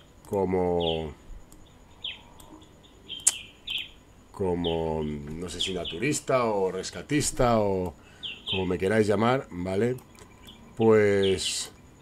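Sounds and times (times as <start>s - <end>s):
high animal chirps: 1.6s - 4.8s
sharp click: 3.2s - 3.5s.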